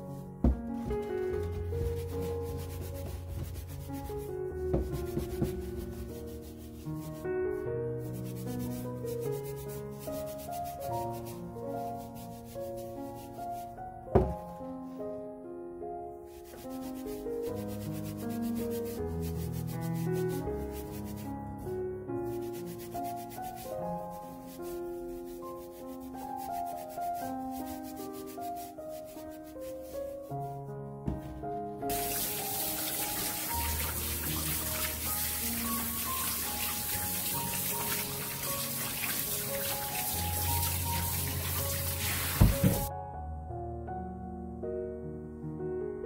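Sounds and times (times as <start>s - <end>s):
background music of held notes: 0.0s - 44.8s
gloved hands rubbing fruit skin: 0.9s - 7.4s, 16.4s - 30.3s, 31.9s - 42.9s.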